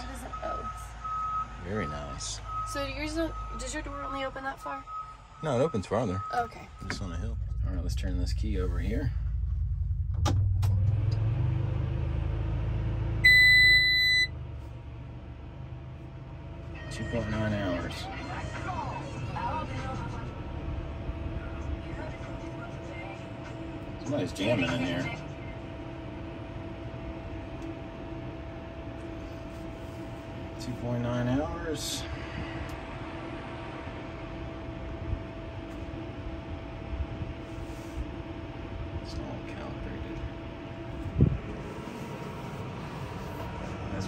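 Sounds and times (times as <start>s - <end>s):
low engine rumble: 0.0s - 44.0s
loud electronic beep: 13.2s - 14.4s
mechanical hum with high whine: 16.2s - 44.0s.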